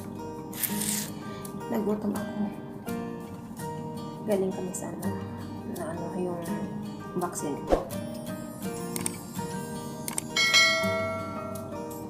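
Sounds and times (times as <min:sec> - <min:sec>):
background music: 0:00.0 - 0:12.0
bright bell chime: 0:10.4 - 0:12.0.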